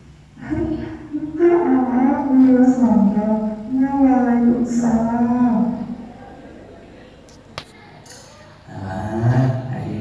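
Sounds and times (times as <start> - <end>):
low hall noise: 0.0 - 10.0.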